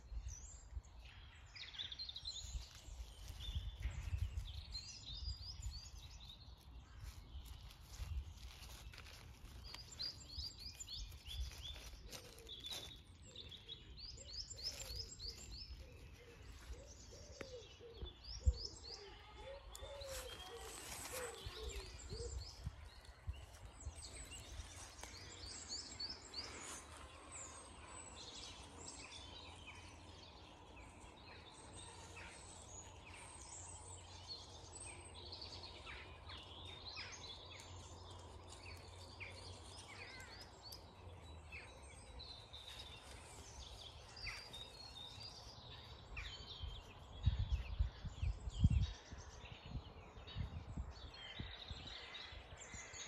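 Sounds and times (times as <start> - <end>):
songbirds chirping and trilling: 0.0 - 53.0.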